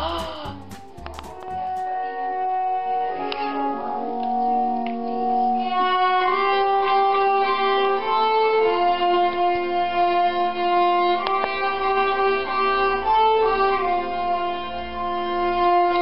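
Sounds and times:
two violins playing slowly: 0.0 - 16.0.

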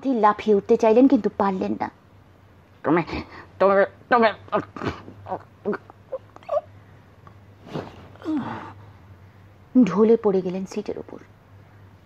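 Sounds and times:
faint steady hum: 0.0 - 12.0
person whimpering: 8.2 - 8.8.

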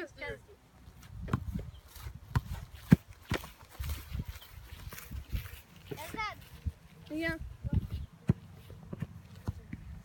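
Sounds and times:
soccer ball kicked on grass: 0.9 - 10.0
running feet thumping: 1.1 - 6.8
boy calling out: 6.0 - 6.5.

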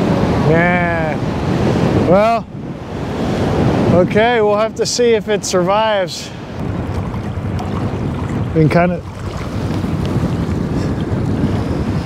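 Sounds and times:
small waves washing ashore: 0.0 - 12.0
wind buffeting microphone: 0.0 - 12.0.

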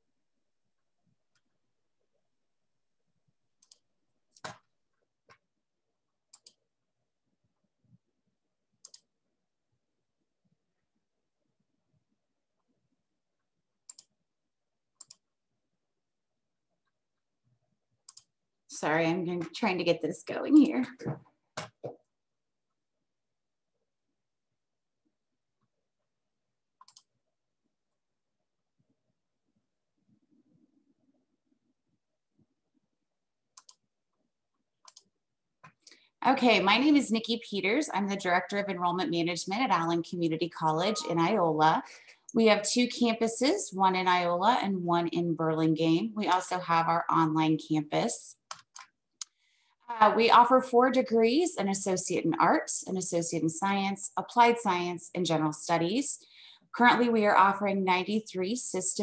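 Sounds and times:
computer mouse clicks: 3.6 - 4.7, 6.3 - 6.7, 8.8 - 9.1, 13.8 - 14.2, 15.0 - 15.3, 18.0 - 18.4, 26.8 - 27.1, 33.5 - 33.8, 34.8 - 36.1, 48.4 - 49.4
computer mouse double-clicks: 6.3 - 6.6, 8.8 - 9.1, 13.9 - 14.1, 15.0 - 15.2, 18.1 - 18.3, 26.8 - 27.1, 33.6 - 33.8, 34.8 - 35.1.

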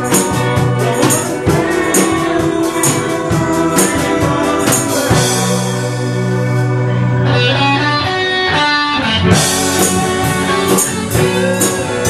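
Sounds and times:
electric guitar single notes: 0.0 - 12.0
live band music: 0.0 - 12.0.

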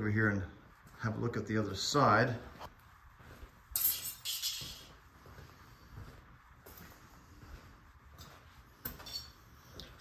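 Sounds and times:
soft footsteps: 0.0 - 10.0.

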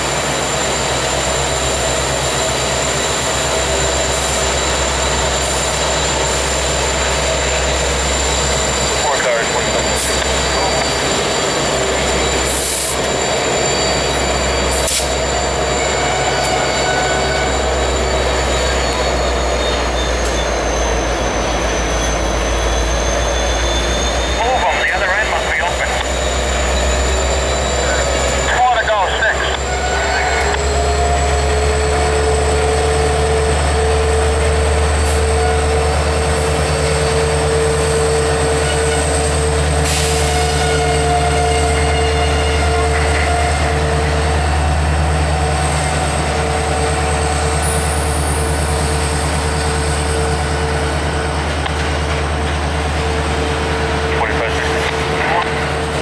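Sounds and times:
diesel locomotive engine rumble: 0.0 - 56.0
high-pitched whine: 0.0 - 56.0.

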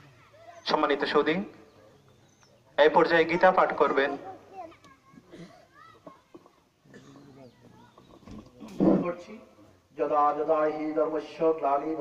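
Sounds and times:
faint voices: 0.0 - 9.9
man speaking: 2.8 - 4.4, 8.6 - 12.0
rough microphone noise burst: 7.2 - 10.5.

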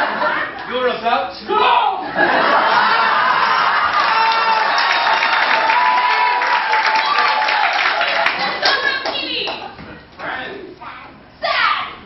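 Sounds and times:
audience applauding and cheering: 3.0 - 9.6.

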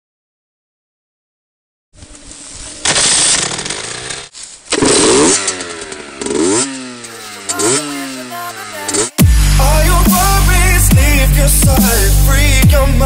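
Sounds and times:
two-stroke motorcycle engine revving: 2.0 - 13.0.

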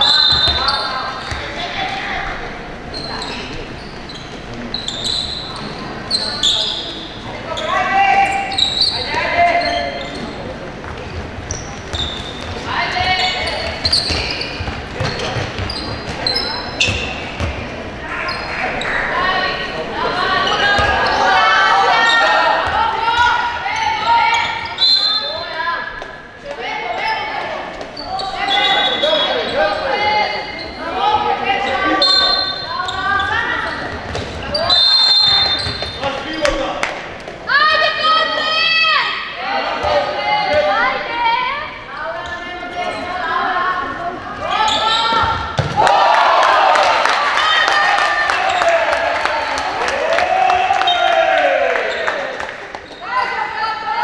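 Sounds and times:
players shouting: 44.4 - 54.0
ball bouncing on wooden floor: 45.2 - 45.8.

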